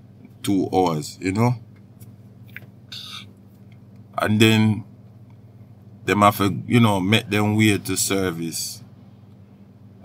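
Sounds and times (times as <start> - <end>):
faint low electrical hum: 0.0 - 10.0.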